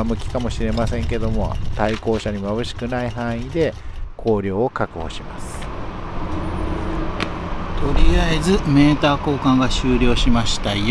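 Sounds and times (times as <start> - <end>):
motor vehicle rumble: 0.0 - 10.9.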